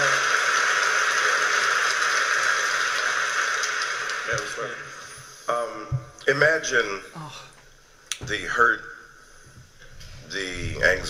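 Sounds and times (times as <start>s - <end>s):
audience applauding: 0.0s - 5.2s.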